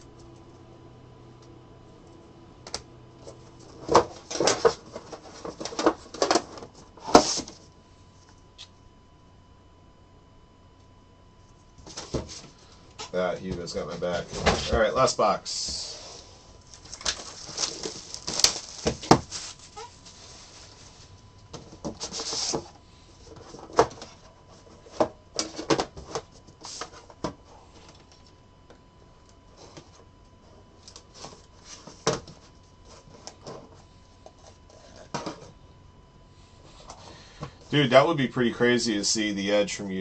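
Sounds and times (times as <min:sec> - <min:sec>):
plastic wrap crinkling and tearing: 0:16.7 - 0:20.2.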